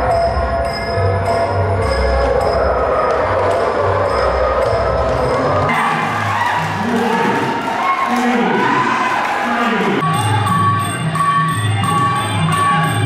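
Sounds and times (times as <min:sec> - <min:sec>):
crowd shouting and cheering: 0:00.0 - 0:13.0.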